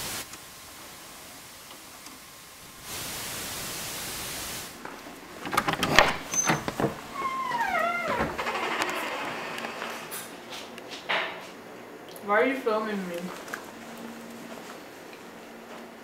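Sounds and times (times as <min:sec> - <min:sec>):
tape hiss: 0:00.0 - 0:10.1
clicks and knocks: 0:04.8 - 0:07.2.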